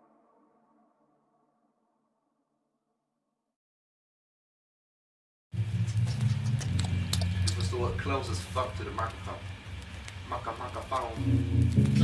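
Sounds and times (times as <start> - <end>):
faint voices talking: 7.5 - 11.4.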